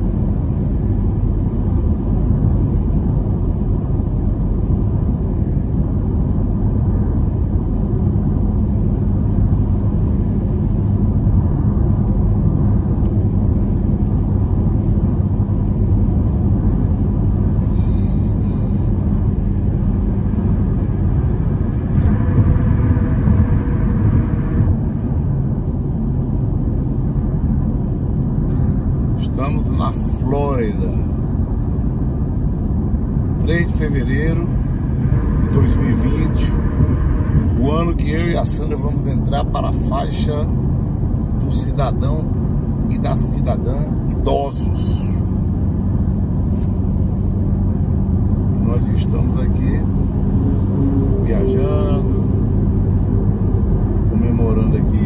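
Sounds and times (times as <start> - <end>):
car tyres and engine rumble: 0.0 - 55.0.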